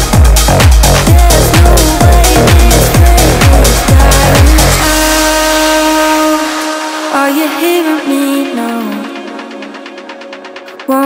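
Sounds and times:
bass: 0:00.0 - 0:11.0.

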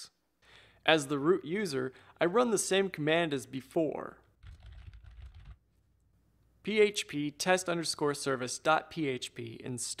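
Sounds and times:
computer keyboard typing: 0:04.4 - 0:05.6.

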